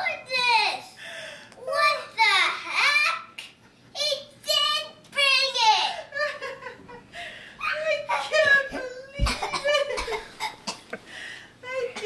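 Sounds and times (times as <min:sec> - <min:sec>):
young girl speaking: 0:00.0 - 0:01.0, 0:01.6 - 0:06.1, 0:07.6 - 0:09.6.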